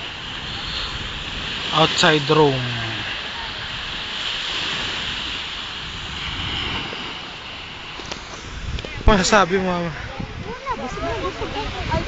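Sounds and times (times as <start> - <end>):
sea surf washing on shore: 0.0 - 12.0
wind rumbling on microphone: 0.0 - 12.0.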